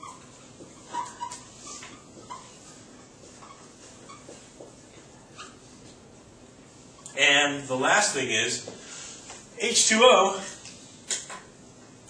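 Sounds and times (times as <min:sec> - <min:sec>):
marker squeaking on whiteboard: 0:00.0 - 0:07.3
low room noise: 0:00.0 - 0:12.0.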